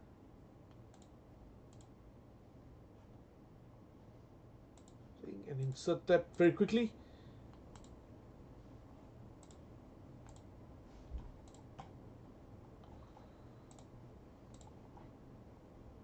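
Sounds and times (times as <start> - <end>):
computer mouse clicks: 0.7 - 1.9, 4.8 - 5.0, 7.5 - 8.0, 9.4 - 9.6, 10.2 - 10.5, 11.4 - 12.0, 12.8 - 15.1.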